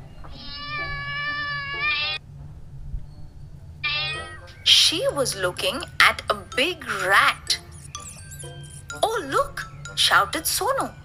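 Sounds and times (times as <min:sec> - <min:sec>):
cat meowing: 0:00.3 - 0:02.2, 0:03.8 - 0:04.5.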